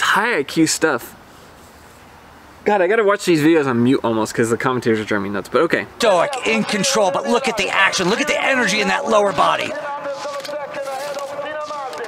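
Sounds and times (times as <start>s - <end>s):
on-camera talking: 2.6s - 12.0s
race broadcast speech playing back: 4.8s - 12.0s.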